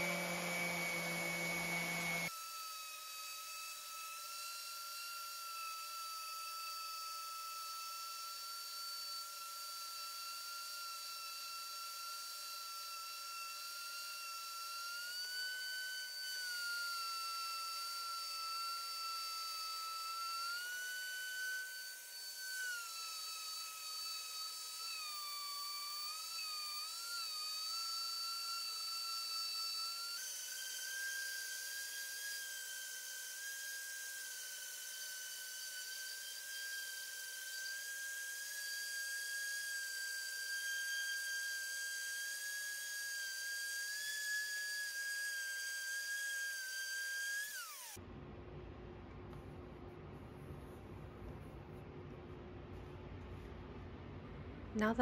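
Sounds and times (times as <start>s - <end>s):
orbital sander whining: 0.0s - 48.0s.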